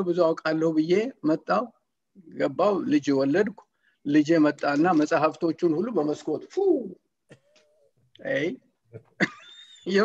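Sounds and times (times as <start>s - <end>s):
man speaking over video call: 0.0s - 10.0s.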